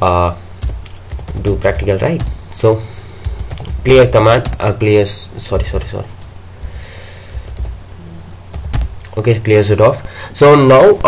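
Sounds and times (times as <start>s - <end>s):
computer keyboard typing: 0.6s - 2.4s, 3.2s - 4.8s, 7.3s - 7.8s, 8.5s - 9.2s.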